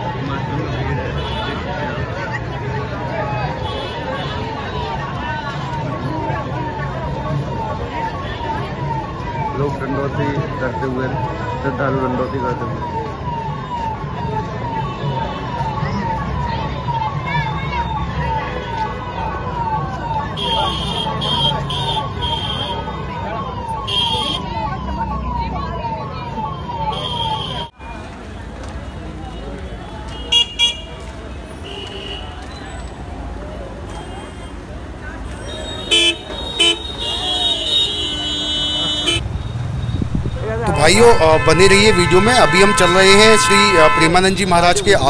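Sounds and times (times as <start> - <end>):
crowd murmuring: 0.0 - 45.0
traffic rumble: 0.0 - 45.0
vehicle horn: 29.8 - 31.0, 35.4 - 45.0
man talking: 40.4 - 45.0.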